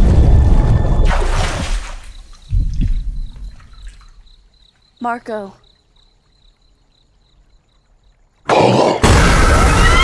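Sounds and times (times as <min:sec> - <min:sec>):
crickets chirring: 0:00.1 - 0:08.5
low thumps: 0:02.4 - 0:04.0.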